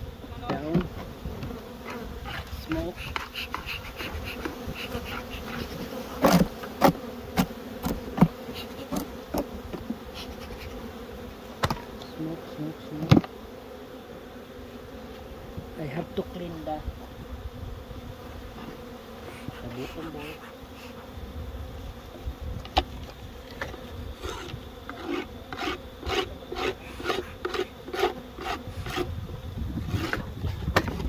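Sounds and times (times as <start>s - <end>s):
honeybees buzzing: 0.0s - 31.0s
knocks of hive equipment: 6.2s - 9.9s, 11.6s - 12.0s, 13.0s - 13.4s.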